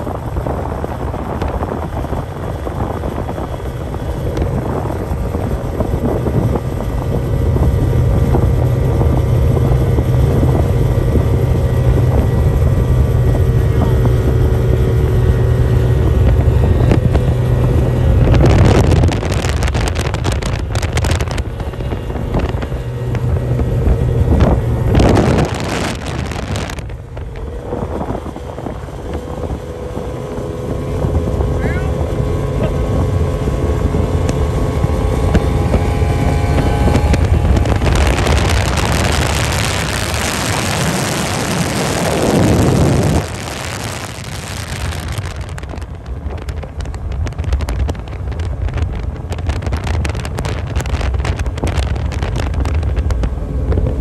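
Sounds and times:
race boat engines at high revs: 0.0s - 54.0s
wind buffeting microphone: 0.0s - 54.0s.

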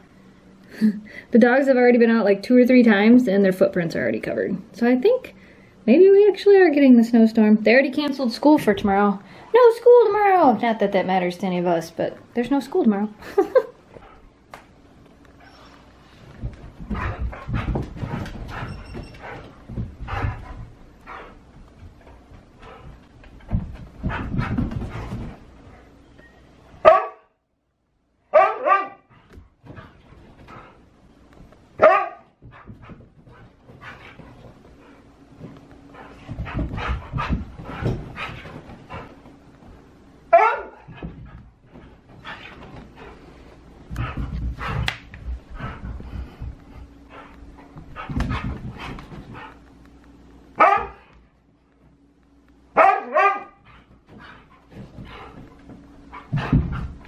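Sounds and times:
dog paws thumping and scrabbling: 7.3s - 26.0s, 28.7s - 57.0s
dog barking: 26.8s - 27.3s, 28.3s - 29.0s, 31.8s - 32.3s, 40.3s - 40.9s, 50.6s - 51.0s, 52.8s - 53.6s.

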